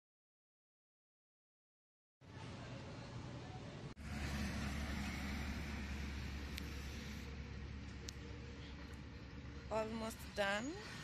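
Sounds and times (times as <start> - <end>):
roadside rumble and hiss: 2.2 - 11.0.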